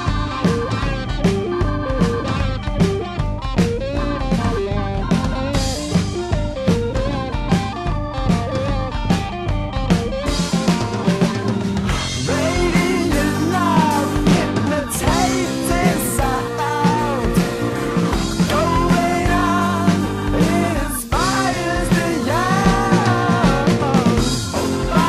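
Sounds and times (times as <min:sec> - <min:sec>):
bass guitar: 0:00.0 - 0:25.0
drum kit beat: 0:00.0 - 0:25.0
electric guitars: 0:00.0 - 0:25.0.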